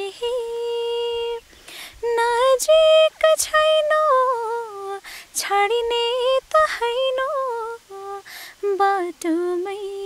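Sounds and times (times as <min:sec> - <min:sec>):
woman singing unaccompanied: 0:00.0 - 0:10.0
quick breaths: 0:01.5 - 0:02.0, 0:05.0 - 0:05.3, 0:08.2 - 0:08.6.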